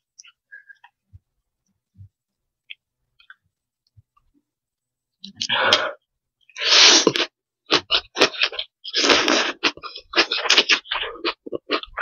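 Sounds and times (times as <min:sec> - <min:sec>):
slurping noodles: 0:06.6 - 0:12.0.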